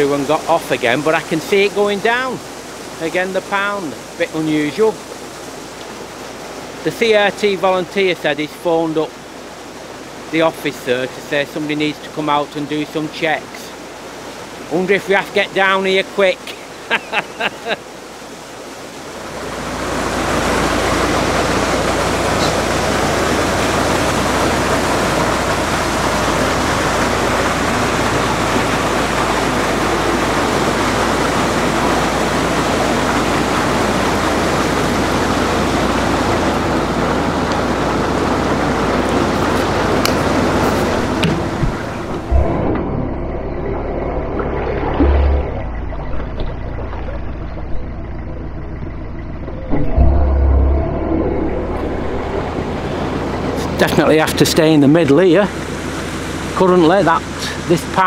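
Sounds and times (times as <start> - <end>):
loud steady rushing noise: 19.7 - 46.9, 48.4 - 58.0
low hum: 39.4 - 56.1.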